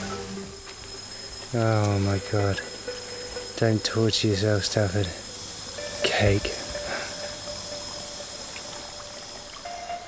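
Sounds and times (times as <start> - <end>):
high insect drone: 0.0 - 10.0
stream rushing: 0.0 - 10.0.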